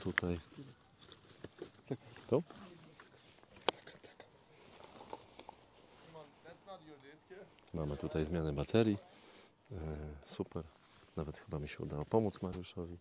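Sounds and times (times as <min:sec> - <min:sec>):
handling noises: 0:00.0 - 0:08.2.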